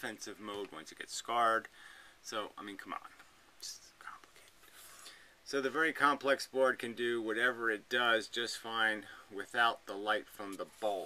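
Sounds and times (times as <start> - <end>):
faint breathy hisses: 1.7 - 2.3, 3.8 - 5.5, 9.0 - 9.4.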